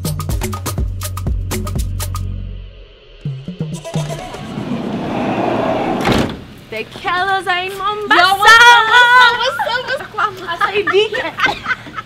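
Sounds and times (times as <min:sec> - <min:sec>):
excited voices talking: 0:07.6 - 0:11.4.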